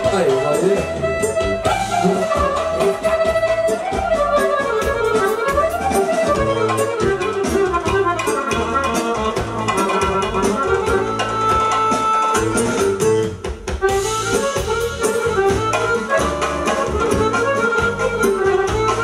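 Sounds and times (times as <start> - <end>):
live band with button accordion: 0.0 - 19.0.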